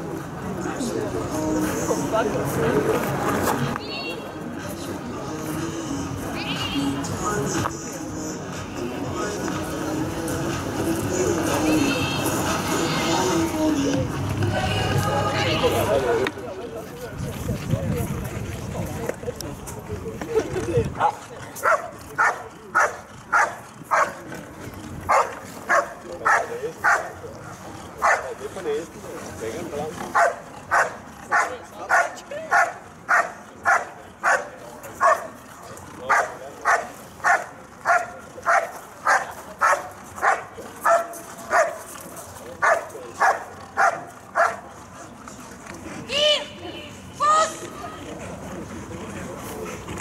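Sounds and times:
dog barking: 21.0 - 24.2, 25.1 - 27.1, 28.0 - 28.2, 30.2 - 35.3, 36.1 - 41.8, 42.6 - 44.6.

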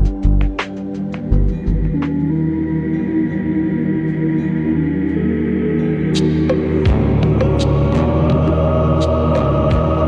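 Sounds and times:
ambient music with held tones: 0.0 - 10.0.

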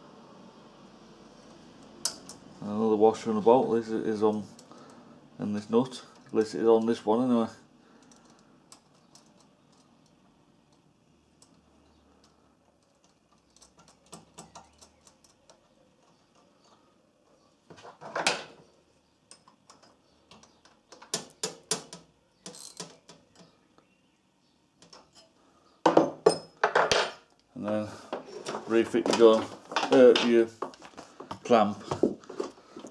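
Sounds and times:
metal clicks of nuts and tools: 8.0 - 11.6, 12.2 - 16.8, 19.2 - 23.6
tool clattering on wooden bench: 17.7 - 18.6, 25.9 - 32.9.

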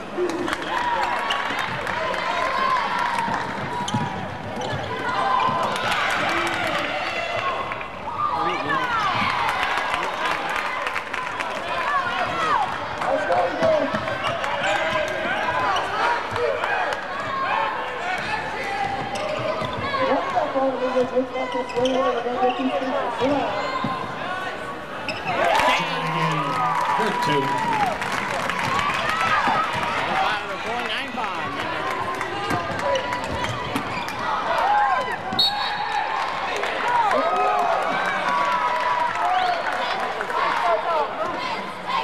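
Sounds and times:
people shouting and chatting: 0.0 - 42.0.

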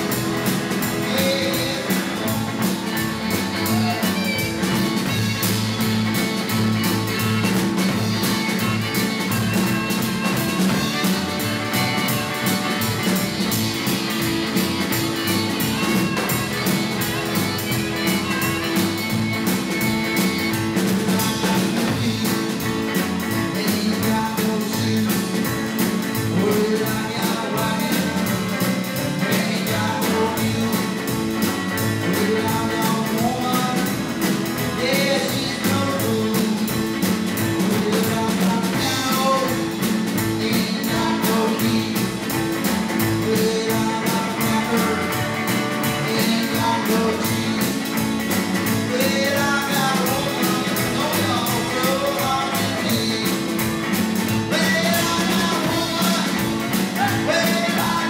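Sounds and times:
drum kit: 0.0 - 58.0
electric guitar: 0.0 - 58.0
upright bass: 0.0 - 58.0.

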